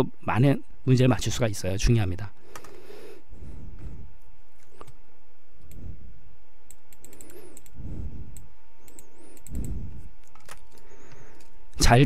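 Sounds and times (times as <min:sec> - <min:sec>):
faint electrical hum: 0:00.0 - 0:12.0
mouse and keyboard clicks: 0:06.7 - 0:07.8, 0:08.4 - 0:11.5.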